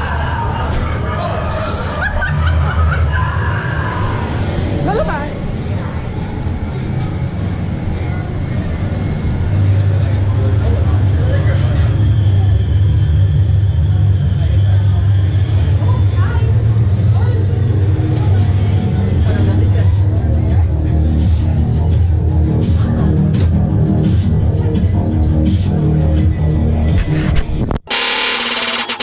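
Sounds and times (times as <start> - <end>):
faint voices: 0.0 - 26.8
low rumbling drone: 0.0 - 26.9
faint music: 0.0 - 27.4.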